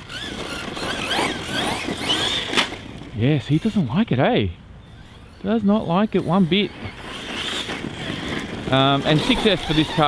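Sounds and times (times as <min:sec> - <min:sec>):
electric motor whine: 0:00.0 - 0:03.8, 0:04.8 - 0:10.0
drivetrain and tyres on grass: 0:00.0 - 0:10.0.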